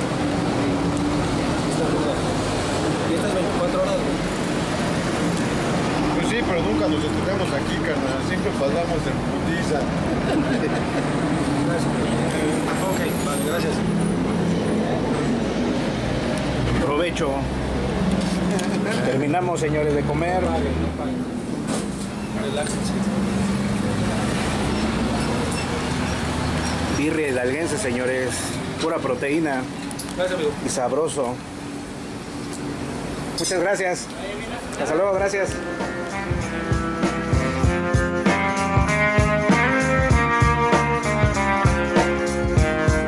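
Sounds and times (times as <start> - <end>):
street traffic rumble: 0.0 - 43.0.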